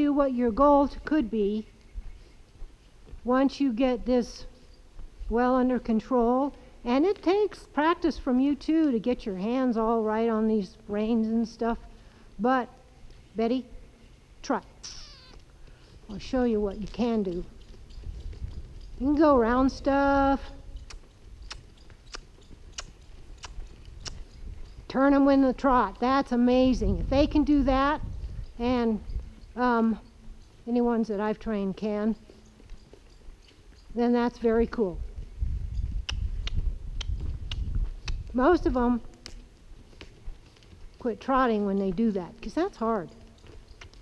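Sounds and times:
sharp clicks: 0:20.8 - 0:24.3, 0:36.0 - 0:38.3.

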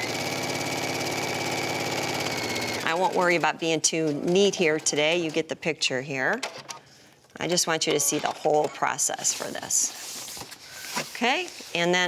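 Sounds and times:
sewing machine stitching: 0:00.0 - 0:05.4.

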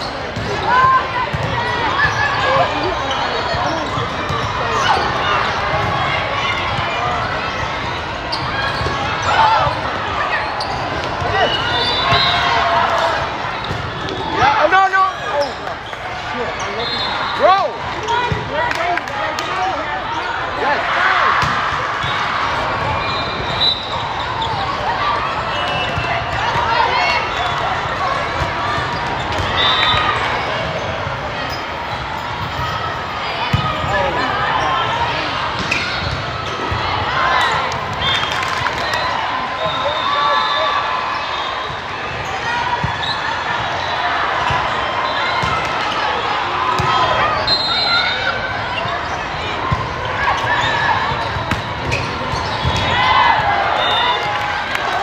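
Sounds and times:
chatter and calls in echoing hall: 0:00.0 - 0:55.0.

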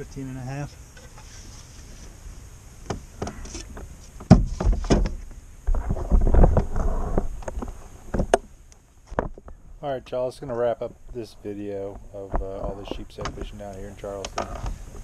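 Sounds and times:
rustling: 0:00.6 - 0:09.8
heavy thumps: 0:02.8 - 0:08.5.

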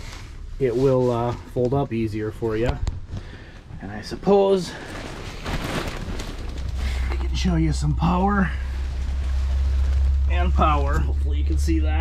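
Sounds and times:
low rumble: 0:01.4 - 0:12.0
hand rustling plastic wrapping: 0:04.5 - 0:07.4.

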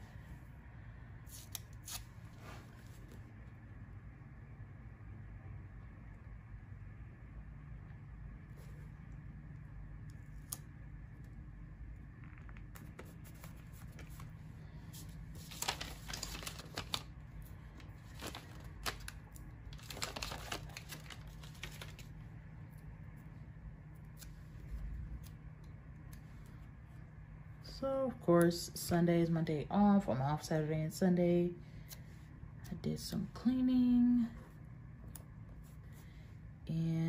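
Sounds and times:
low steady hum: 0:00.0 - 0:37.0
stickers peeling and rustling: 0:12.3 - 0:22.2.

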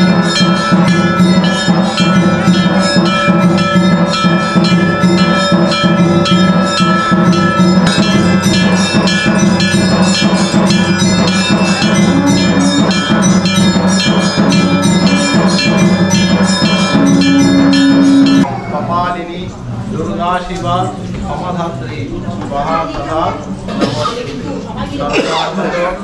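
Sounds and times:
bells clanging rapidly: 0:00.0 - 0:18.6.

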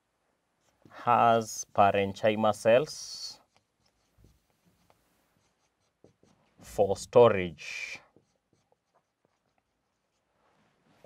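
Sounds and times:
marker writing on whiteboard: 0:02.6 - 0:10.4.

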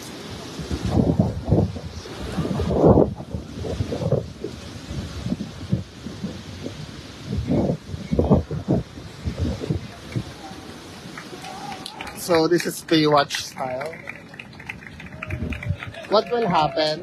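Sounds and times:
small waves on shore: 0:00.0 - 0:17.0
wind buffeting microphone: 0:00.0 - 0:17.0.

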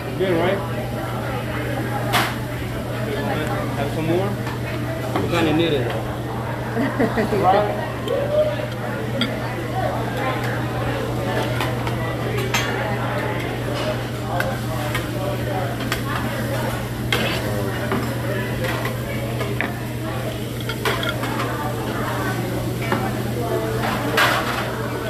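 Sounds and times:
restaurant chatter: 0:00.0 - 0:25.0
cutlery clinking on plates: 0:20.5 - 0:21.5.

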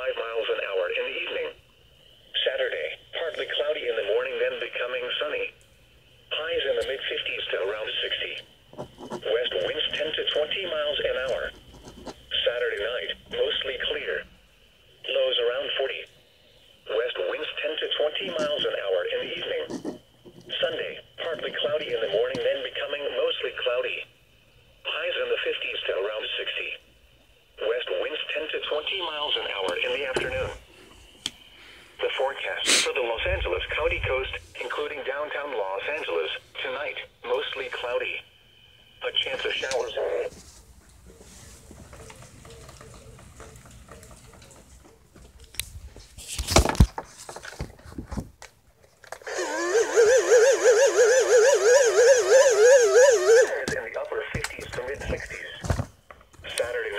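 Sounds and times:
voice on small radio speaker: 0:00.0 - 0:01.6, 0:02.3 - 0:05.6, 0:06.3 - 0:08.4, 0:09.1 - 0:11.6, 0:12.3 - 0:14.3, 0:15.0 - 0:16.2, 0:16.9 - 0:24.1, 0:24.8 - 0:26.8, 0:27.6 - 0:30.6, 0:32.0 - 0:38.3, 0:39.0 - 0:40.4, 0:49.4 - 0:55.7, 0:56.4 - 0:56.9
low hiss: 0:00.0 - 0:43.9.

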